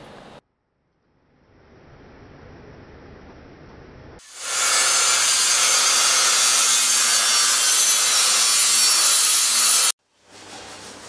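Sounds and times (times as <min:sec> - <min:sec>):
loud steady hissing: 0:04.2 - 0:09.9.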